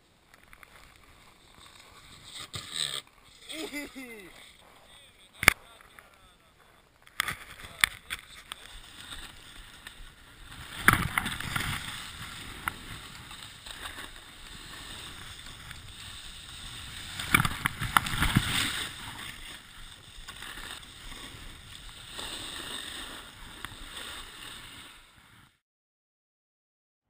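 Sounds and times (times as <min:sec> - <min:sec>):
snowboard scraping on snow: 0:00.0 - 0:05.3, 0:07.3 - 0:25.6.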